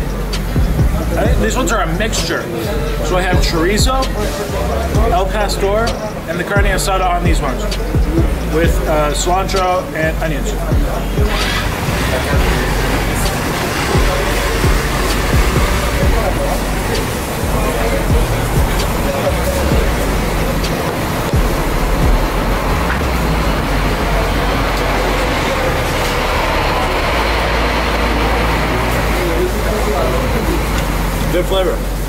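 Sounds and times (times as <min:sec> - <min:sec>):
background music: 0:00.0 - 0:32.0
distant people talking: 0:00.0 - 0:32.0
street traffic noise: 0:00.0 - 0:32.0.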